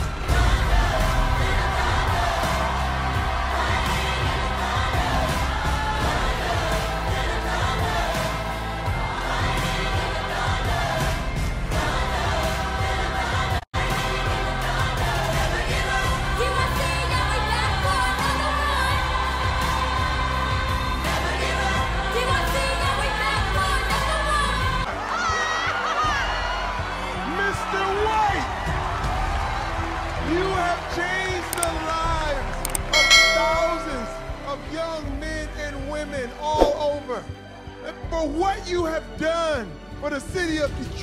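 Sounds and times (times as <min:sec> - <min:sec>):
youth choir singing: 0:00.0 - 0:26.6
background music: 0:00.0 - 0:41.0
sharp clicks: 0:32.6 - 0:32.9
bell chime: 0:32.8 - 0:34.7.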